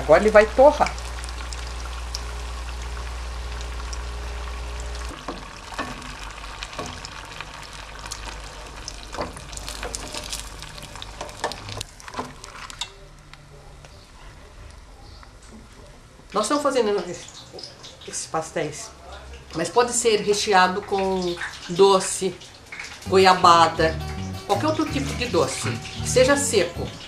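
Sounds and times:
food deep-frying sizzle: 0:00.0 - 0:12.9, 0:16.4 - 0:27.0.

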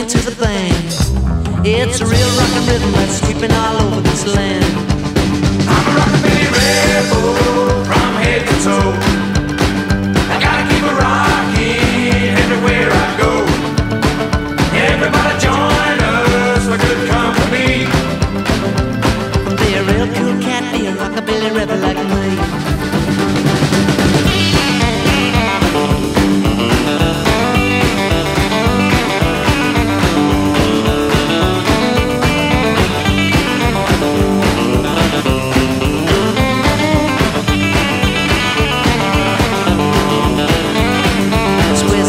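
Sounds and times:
rockabilly electric guitar: 0:00.0 - 0:42.0
steady driving beat: 0:00.0 - 0:42.0.

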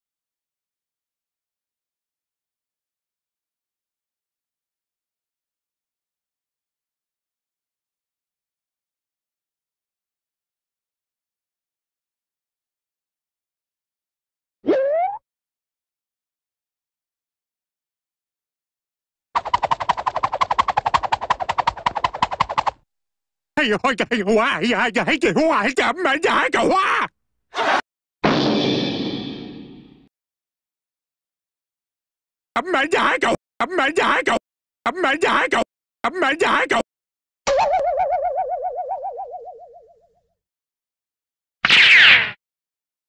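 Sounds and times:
machine-gun-like rattle: 0:19.4 - 0:22.8
cartoon boing twang: 0:37.5 - 0:38.1.

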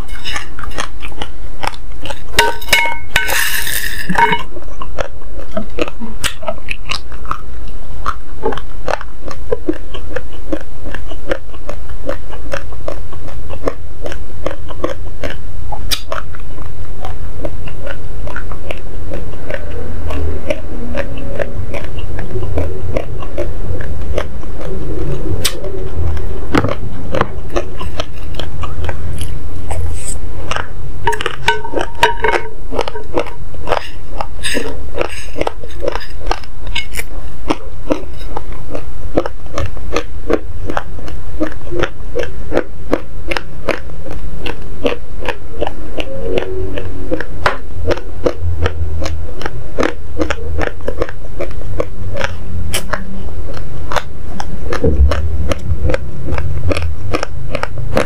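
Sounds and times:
chewing crunchy rice: 0:00.0 - 0:58.0.

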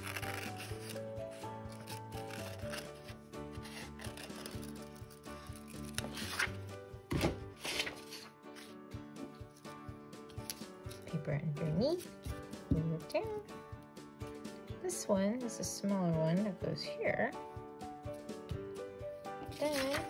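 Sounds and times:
scissors snipping paper: 0:00.0 - 0:01.0, 0:01.6 - 0:06.5, 0:19.4 - 0:20.0
paper rustling: 0:00.0 - 0:01.1, 0:01.7 - 0:08.8, 0:19.4 - 0:20.0
soft background music: 0:00.0 - 0:20.0.

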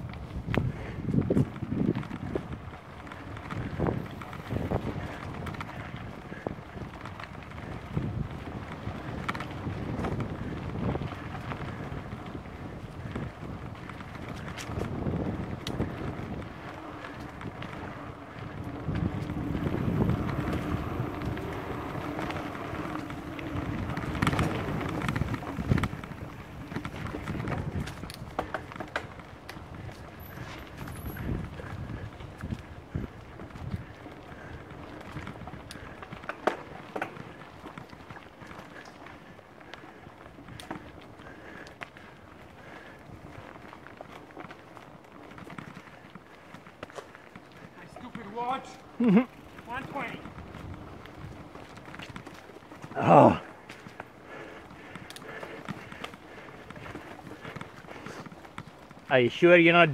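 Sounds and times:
wind buffeting microphone: 0:00.0 - 0:46.6, 0:47.4 - 0:59.9
tyres rumbling on dirt: 0:01.5 - 0:46.6, 0:47.2 - 0:59.9
bike knocks and rattles: 0:07.0 - 0:39.0.

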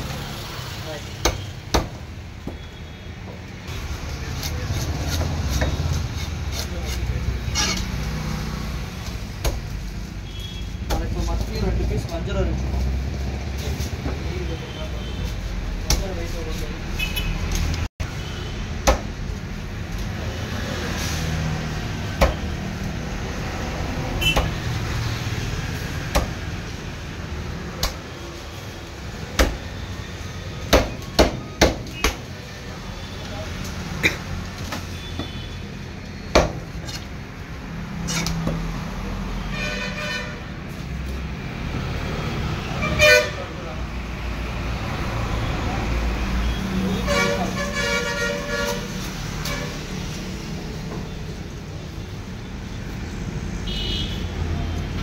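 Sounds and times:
traffic rumble: 0:00.0 - 0:55.0
vehicle horns honking: 0:07.4 - 0:08.0, 0:10.2 - 0:10.9, 0:16.9 - 0:17.5, 0:24.2 - 0:24.6, 0:34.8 - 0:35.7, 0:39.5 - 0:40.5, 0:42.7 - 0:43.6, 0:46.4 - 0:49.8, 0:53.7 - 0:54.3.

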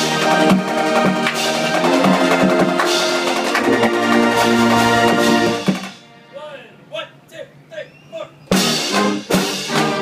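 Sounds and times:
marching band playing: 0:00.0 - 0:10.0
drum hit: 0:00.4 - 0:04.4, 0:05.0 - 0:06.0
voices calling out: 0:06.4 - 0:08.5.

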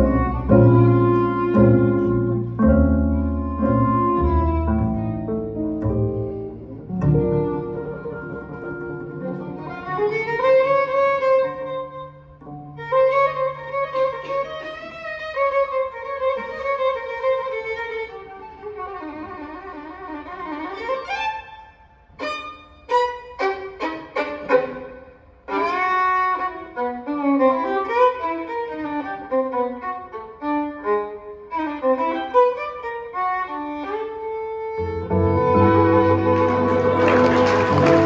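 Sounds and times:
double bass: 0:00.0 - 0:18.2, 0:33.6 - 0:38.0
violin melody: 0:00.0 - 0:38.0.

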